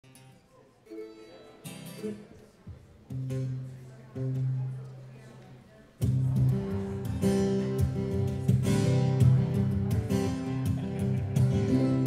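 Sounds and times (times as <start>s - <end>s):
plucked guitar and mandolin notes: 0.0s - 5.3s, 6.0s - 12.0s.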